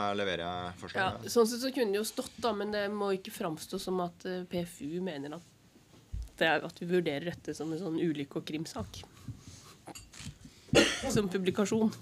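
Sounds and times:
person coughing: 10.7 - 11.2.

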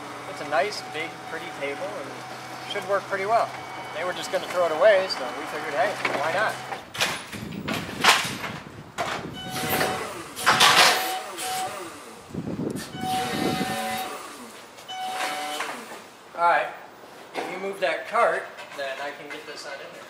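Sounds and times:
steady whine: 0.0 - 6.9
forklift rattling and clanking: 0.0 - 11.8.

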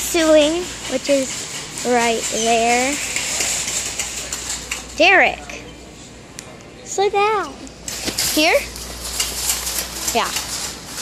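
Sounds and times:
busy store hiss: 0.0 - 11.0.

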